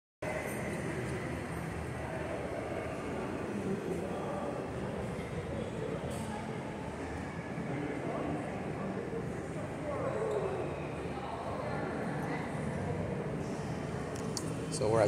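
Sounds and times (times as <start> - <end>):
shop interior background noise: 0.2 - 15.0.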